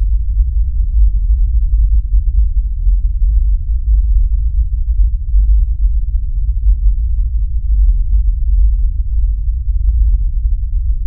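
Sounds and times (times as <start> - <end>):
deep rumbling drone: 0.0 - 11.0.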